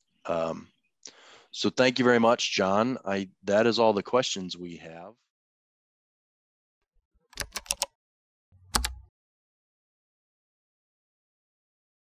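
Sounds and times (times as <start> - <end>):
keyboard keystrokes: 7.4 - 7.9, 8.7 - 9.1.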